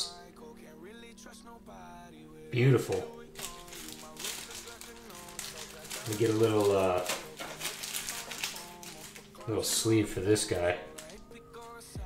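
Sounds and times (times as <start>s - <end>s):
soft background music: 0.0s - 12.0s
faint rustling of plastic sleeve: 2.9s - 11.9s.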